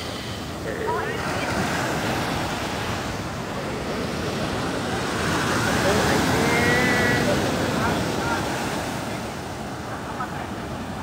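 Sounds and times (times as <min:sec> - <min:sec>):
surf breaking on shore: 0:00.0 - 0:11.0.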